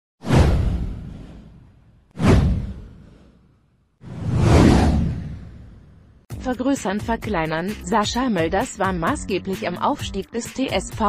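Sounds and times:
whoosh with deep boom: 0:00.2 - 0:06.3.

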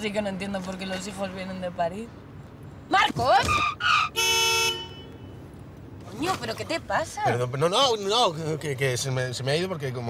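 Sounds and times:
car horn blast: 0:04.2 - 0:05.4.

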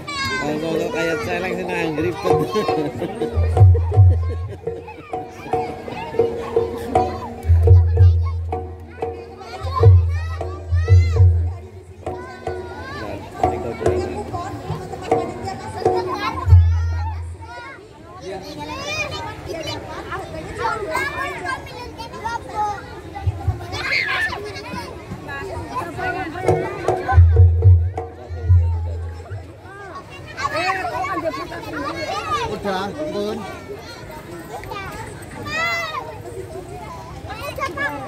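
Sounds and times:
children chattering and calling: 0:00.0 - 0:38.0
low thumps: 0:03.4 - 0:17.5, 0:26.5 - 0:29.5
children squealing: 0:23.7 - 0:24.7.

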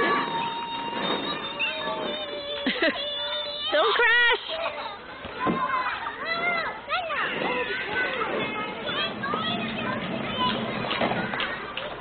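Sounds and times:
children calling out and chattering: 0:00.0 - 0:12.0.

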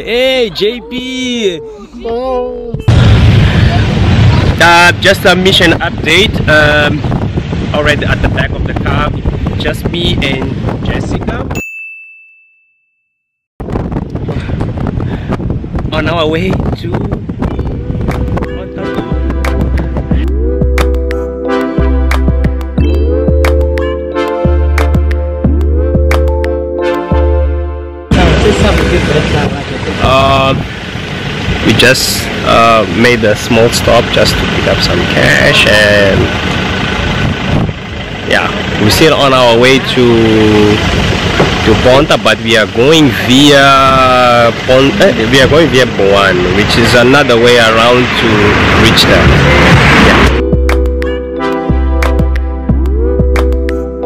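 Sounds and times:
vehicle driving: 0:00.0 - 0:11.5, 0:13.6 - 0:54.0
wind buffeting microphone: 0:02.5 - 0:11.6, 0:13.6 - 0:21.1, 0:33.3 - 0:43.4, 0:44.5 - 0:50.7
high ding: 0:11.6 - 0:13.2
vehicle engine idling: 0:28.1 - 0:51.1.

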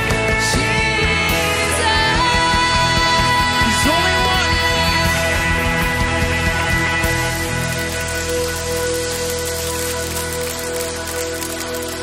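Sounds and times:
congregation applauding: 0:06.0 - 0:12.0.

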